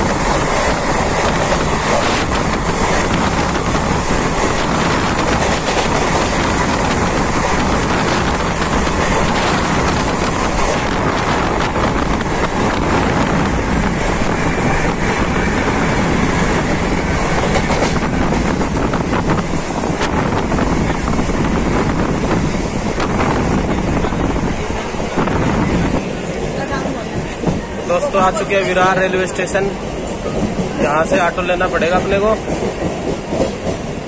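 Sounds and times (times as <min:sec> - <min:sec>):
rush of wind: 0:00.0 - 0:34.0
train rumble: 0:00.0 - 0:34.0.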